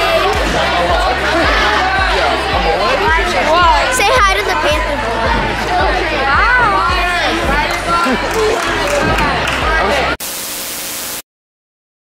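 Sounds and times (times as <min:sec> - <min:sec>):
girls chattering: 0:00.0 - 0:10.2
static hiss: 0:10.2 - 0:11.2.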